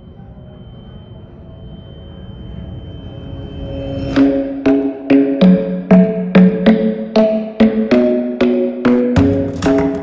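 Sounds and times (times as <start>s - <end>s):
thin high-pitched tone: 0.0s - 5.6s.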